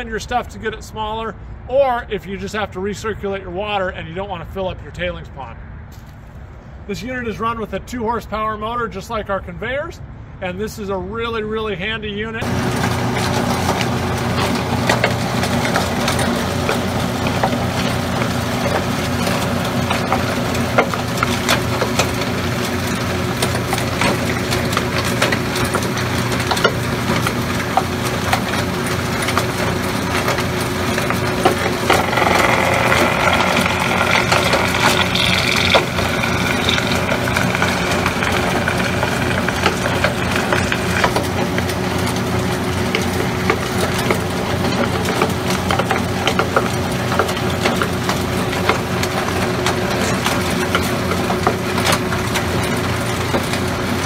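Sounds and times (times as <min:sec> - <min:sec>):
electric motors humming: 0:12.4 - 0:54.0
machinery rattling: 0:12.4 - 0:54.0
ore cracking as it is crushed: 0:31.9 - 0:41.2.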